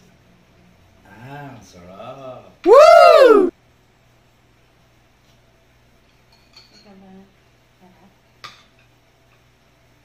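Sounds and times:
metal spoon clinking ceramic bowl: 6.2 - 7.0.

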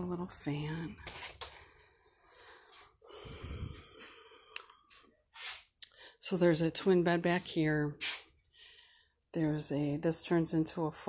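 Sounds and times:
short breath: 1.6 - 6.2, 8.5 - 9.2.

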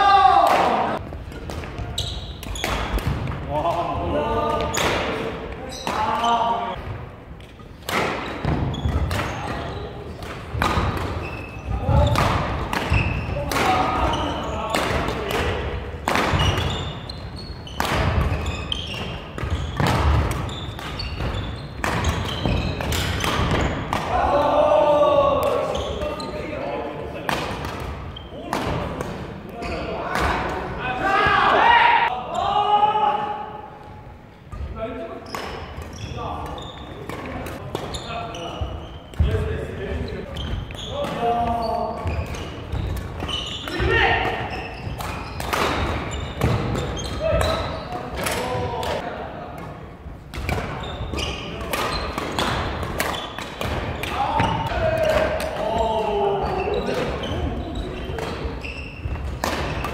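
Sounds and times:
players shouting: 0.0 - 1.0, 24.0 - 26.0, 30.8 - 33.6
rackets smacking shuttlecock: 7.4 - 16.9, 17.7 - 24.2, 40.4 - 49.0, 50.3 - 55.7, 58.0 - 59.9
shoes striking wooden court: 7.4 - 24.2, 35.2 - 49.0.

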